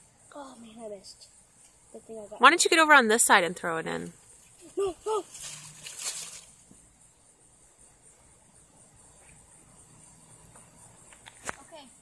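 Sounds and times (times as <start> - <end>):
insect trilling: 0.0 - 12.0
soft rustle: 4.2 - 6.8.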